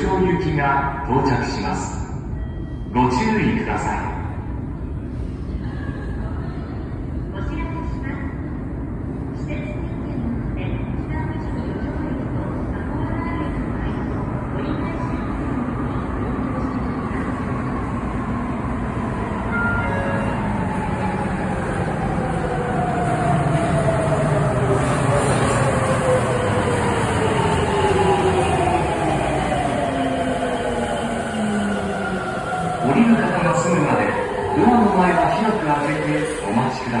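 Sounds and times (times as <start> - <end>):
subway train rumble: 0.0 - 37.0.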